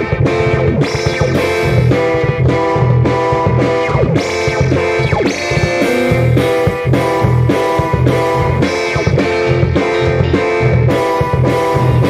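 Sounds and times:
bass guitar: 0.0 - 12.0
distorted electric guitar chords: 0.0 - 12.0.

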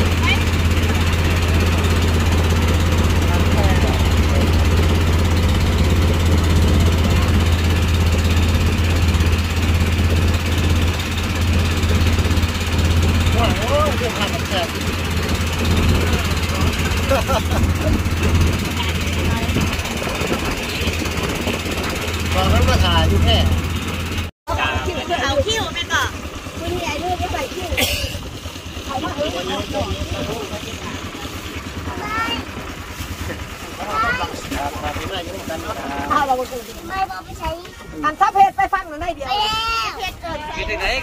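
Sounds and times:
voices: 0.0 - 23.6, 24.5 - 41.0
boat engine humming: 0.0 - 41.0.

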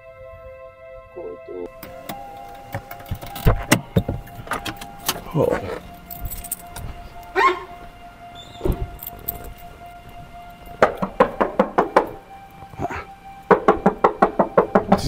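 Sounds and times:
background music: 0.0 - 15.0
knocking inside car boot: 10.8 - 12.2, 13.5 - 15.0.

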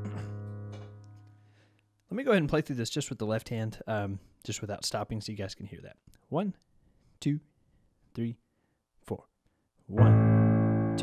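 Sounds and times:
low piano notes ringing: 0.0 - 1.3, 9.9 - 11.0.

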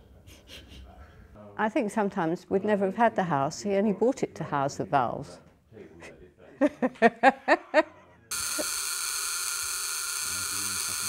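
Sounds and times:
high-pitched electrical buzz and hiss: 8.3 - 11.0.

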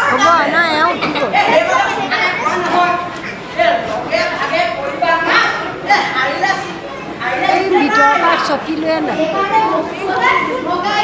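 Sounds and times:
actors speaking: 0.0 - 11.0.

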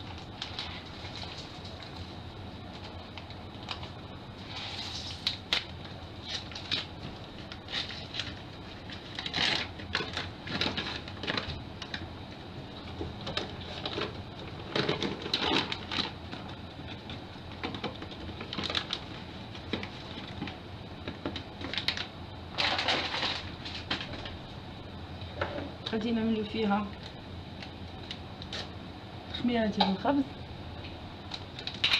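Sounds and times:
faint steady hum: 0.0 - 31.9.

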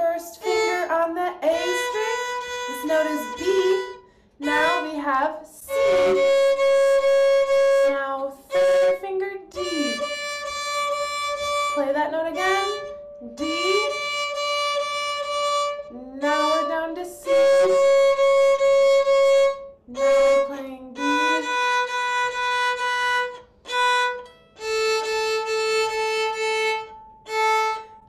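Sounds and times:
violin note bowed: 0.0 - 28.0.

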